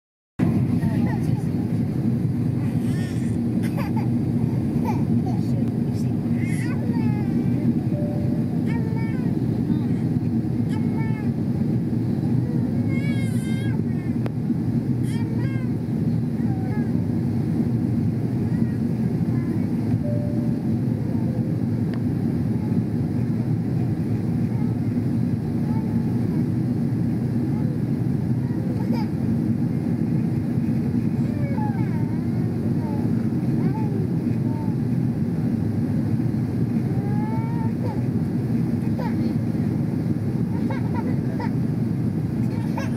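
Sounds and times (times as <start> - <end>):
airliner cabin noise: 0.4 - 42.9
faint passenger voices: 0.4 - 42.9.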